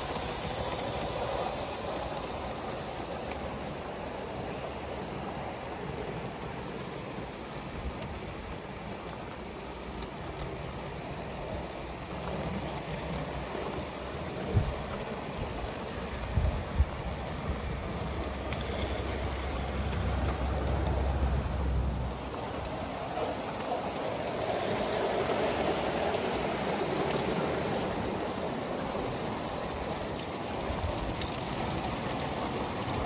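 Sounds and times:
model train rushing hiss: 0.0 - 7.8, 21.8 - 33.0.

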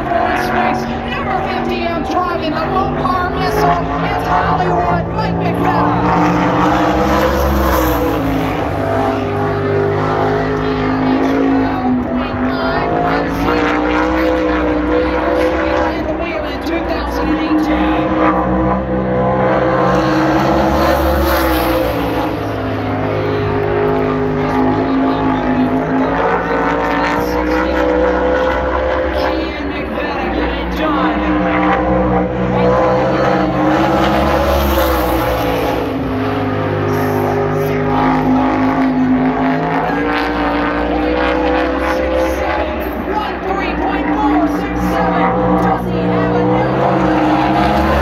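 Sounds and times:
racing car engine at speed: 0.0 - 48.0.

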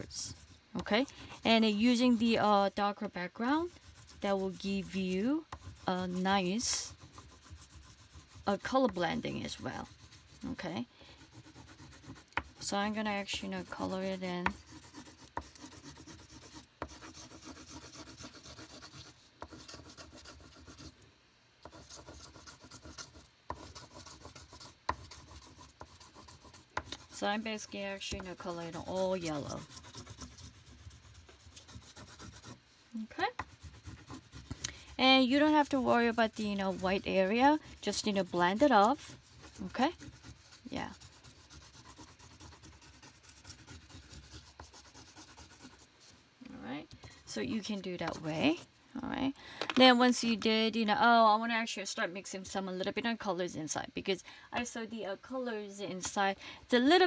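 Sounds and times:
pastel scratching on paper: 0.0 - 21.0, 21.6 - 48.7.

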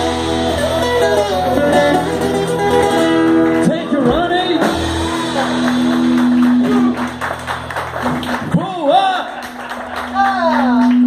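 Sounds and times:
live rock band holding chord: 0.0 - 10.2
drum and cymbal hits: 4.0 - 8.2.

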